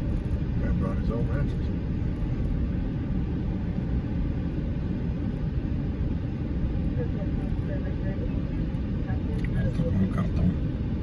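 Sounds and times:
vehicle rumbling on dirt road: 0.0 - 11.0.

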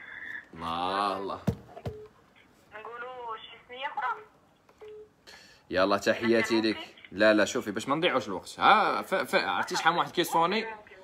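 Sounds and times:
phone beep: 1.8 - 2.2, 4.8 - 5.2
woman's voice over phone: 2.7 - 4.3.

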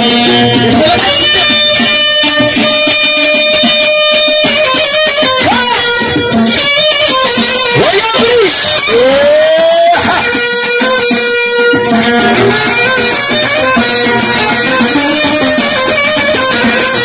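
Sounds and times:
live band with plucked strings: 0.0 - 17.0.

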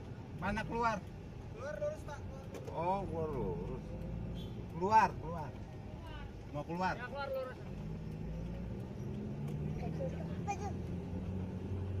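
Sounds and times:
vehicle engine running: 1.6 - 12.0.

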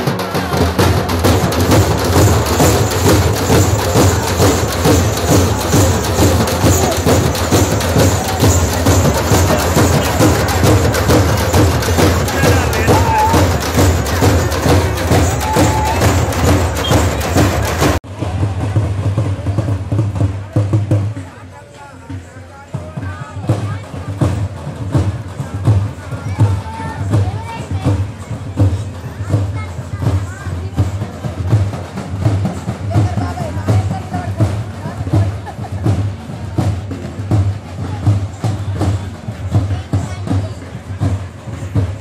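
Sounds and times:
crowd voices: 0.0 - 42.0
drums beaten fast with sticks: 0.0 - 42.0.

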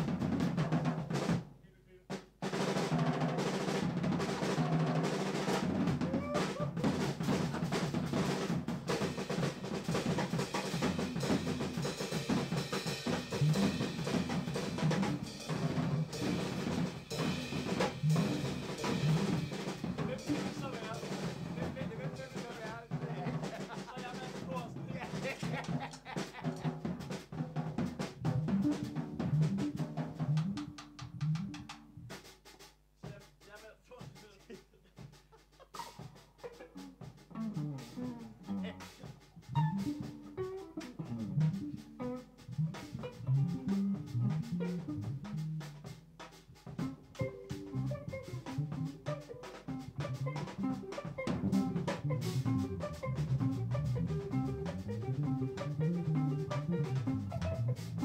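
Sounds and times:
small jazz band playing: 0.0 - 33.6, 35.0 - 58.0
snare drum rolls and cymbal: 0.0 - 58.0
plucked guitar notes: 37.4 - 45.8, 46.8 - 58.0.

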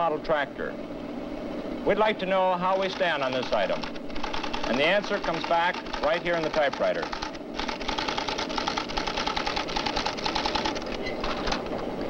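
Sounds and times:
typewriter clattering: 2.7 - 11.7.

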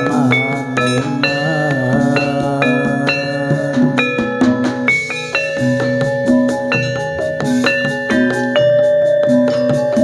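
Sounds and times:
drum strokes: 0.0 - 10.0
struck ringing pitched notes: 0.0 - 10.0.

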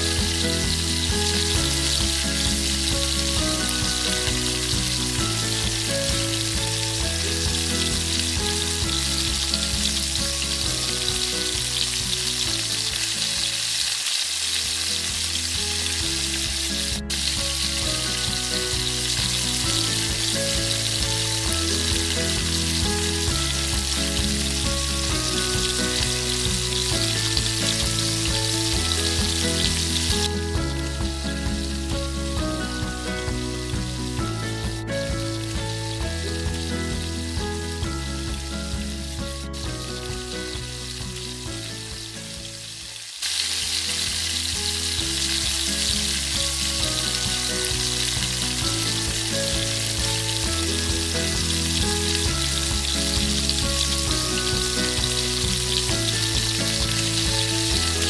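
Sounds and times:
background music with held notes: 0.0 - 58.0
food sizzling in a wok: 0.0 - 58.0.

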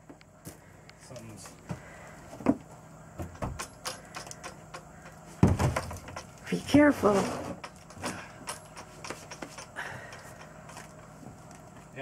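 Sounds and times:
steps and debris scraping: 5.1 - 12.0.

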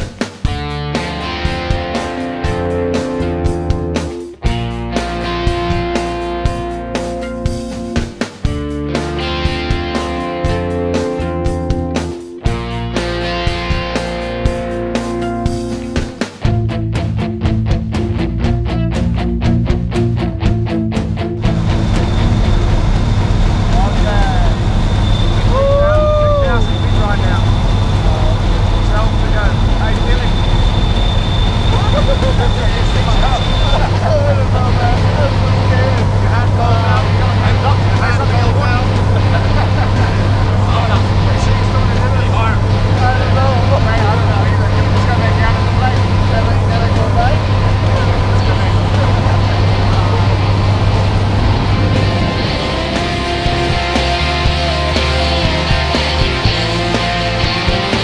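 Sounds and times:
high whine: 21.3 - 58.0
plane engine and propeller droning: 21.4 - 57.0
raised voices: 23.7 - 58.0.

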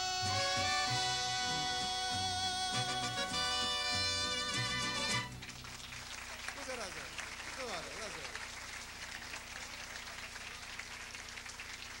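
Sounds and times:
audience applauding: 4.8 - 12.0.

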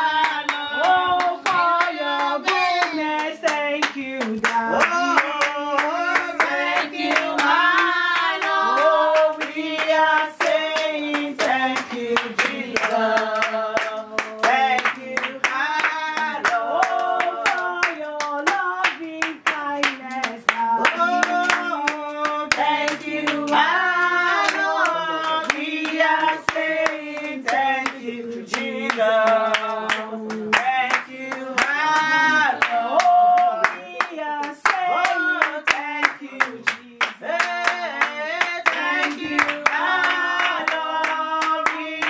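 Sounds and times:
hand clapping to the beat: 0.0 - 42.0
people singing together: 0.0 - 42.0.

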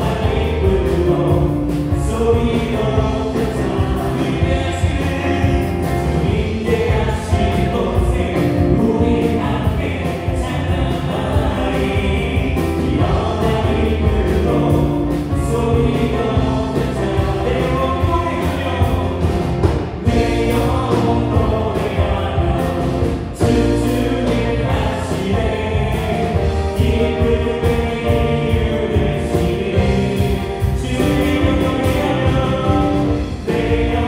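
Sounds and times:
drums keeping steady beat: 0.0 - 34.0
worship band playing gospel song: 0.0 - 34.0.

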